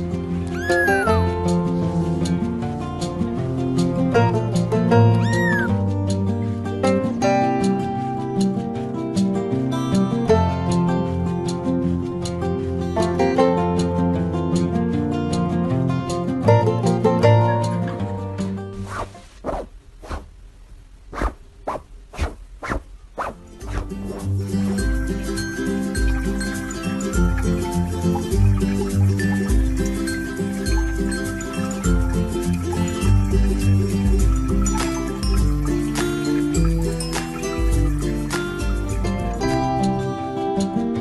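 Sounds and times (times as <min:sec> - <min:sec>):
music with plucked guitar: 0:00.0 - 0:18.8, 0:23.6 - 0:41.0
kitten meowing: 0:00.5 - 0:01.2, 0:05.1 - 0:05.8
short swishing sounds: 0:18.8 - 0:20.3, 0:21.1 - 0:24.3.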